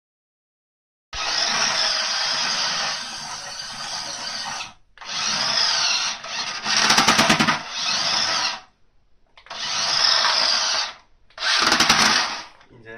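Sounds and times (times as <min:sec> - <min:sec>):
toy motor buzzing at high revs: 0:01.2 - 0:08.7, 0:09.5 - 0:12.6.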